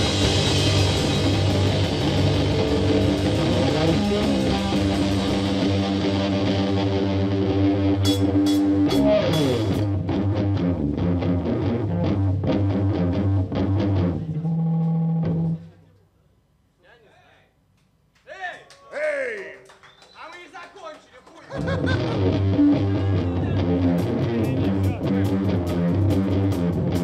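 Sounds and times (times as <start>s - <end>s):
rock band playing: 0.0s - 15.6s, 21.5s - 27.0s.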